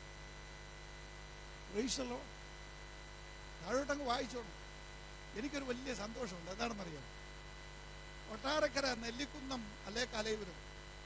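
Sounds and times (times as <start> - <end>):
electrical mains hum: 0.0 - 11.0
man speaking into a microphone: 1.7 - 2.3, 3.6 - 4.6, 5.3 - 7.1, 8.3 - 10.6.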